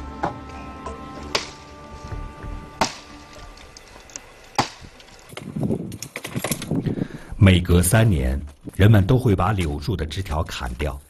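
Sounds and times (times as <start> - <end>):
soft background music: 0.0 - 5.3
chopping blows on branches: 1.3 - 1.7, 2.8 - 3.8, 4.6 - 5.6.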